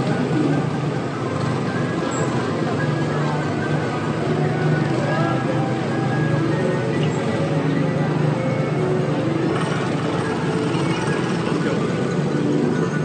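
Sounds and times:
small gasoline engines running: 0.0 - 13.0.

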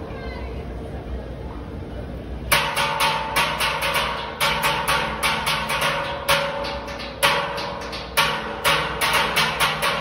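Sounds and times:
steel pan notes ringing: 2.5 - 10.0.

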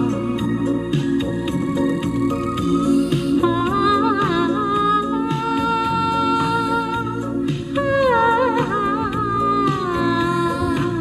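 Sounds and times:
recorded backing track: 0.0 - 11.0.

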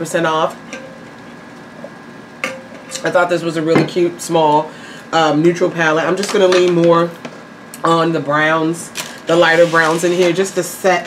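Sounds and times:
room hiss: 9.2 - 11.0.

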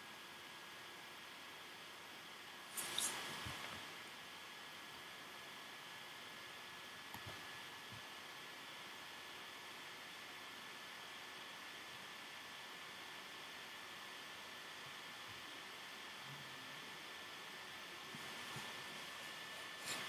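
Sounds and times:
faint high whine: 0.0 - 20.0.

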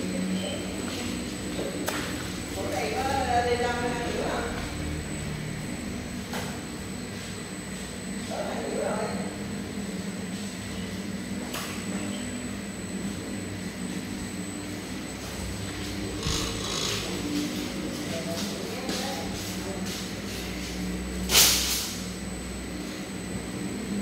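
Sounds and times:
machine humming and droning: 0.0 - 24.0.

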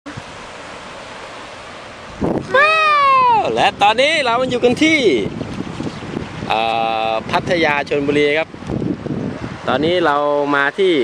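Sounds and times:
wind: 0.0 - 11.0
surf: 0.1 - 11.0.

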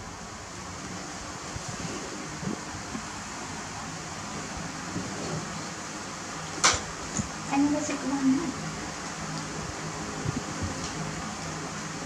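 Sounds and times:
steady hiss-like background noise: 0.0 - 12.0.

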